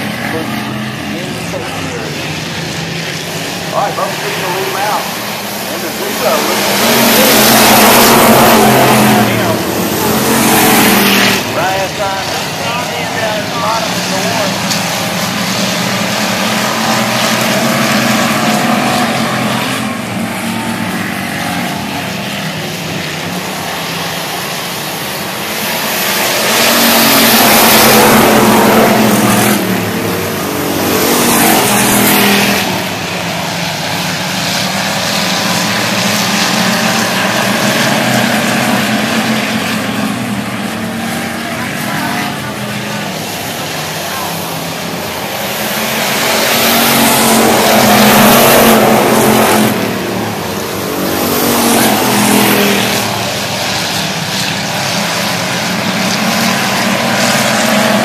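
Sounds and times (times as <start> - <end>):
stock car engines racing: 0.0 - 58.0.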